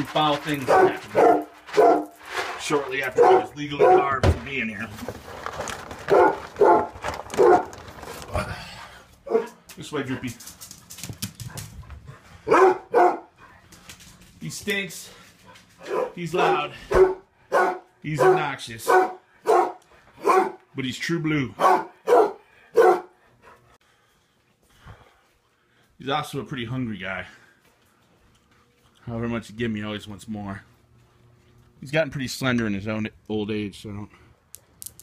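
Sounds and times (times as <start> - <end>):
dog barking loudly: 0.6 - 2.2, 3.0 - 4.2, 6.1 - 7.8, 9.3 - 9.6, 12.4 - 13.4, 15.8 - 20.6, 21.6 - 23.2.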